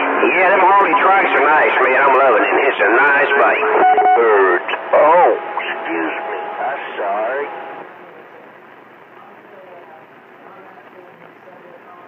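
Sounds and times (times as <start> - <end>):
muffled radio voice: 0.0 - 8.4
radio static hiss: 0.0 - 12.0.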